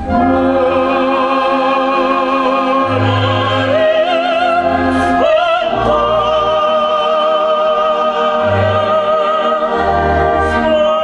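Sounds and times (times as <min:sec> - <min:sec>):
chamber orchestra: 0:00.0 - 0:11.0
person singing with vibrato: 0:00.0 - 0:11.0.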